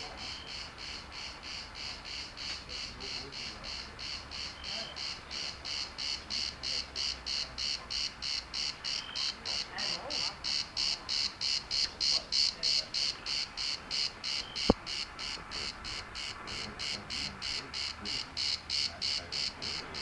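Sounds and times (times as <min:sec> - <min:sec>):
insect chirping: 0:00.0 - 0:20.0.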